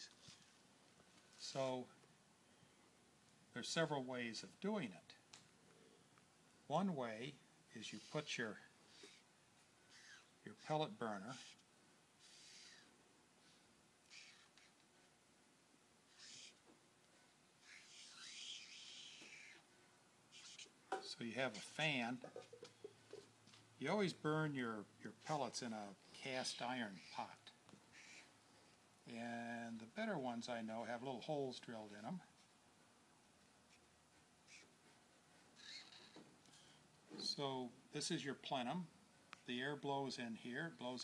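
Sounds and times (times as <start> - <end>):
marker squeaking on paper: 7.8 - 9.3, 9.9 - 14.8, 16.1 - 16.8, 17.6 - 19.7, 20.3 - 23.3, 26.2 - 28.3, 33.7 - 37.3.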